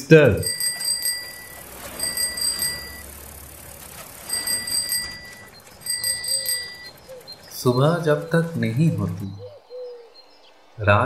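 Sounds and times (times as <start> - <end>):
bicycle bell ringing: 0.0 - 9.2.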